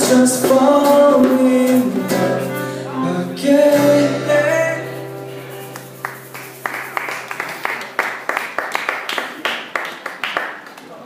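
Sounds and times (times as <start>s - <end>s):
small audience clapping: 5.7s - 11.0s.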